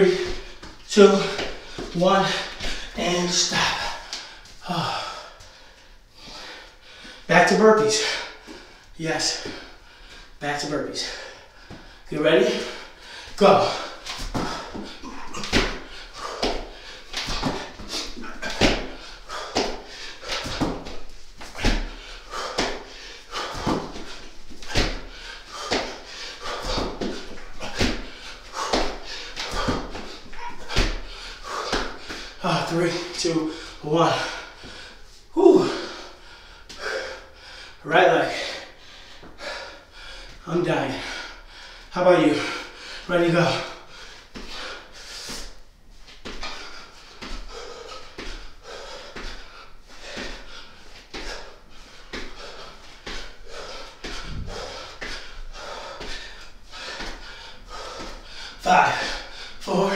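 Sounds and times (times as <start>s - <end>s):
heavy panting: 11.0s - 45.6s, 46.2s - 59.9s.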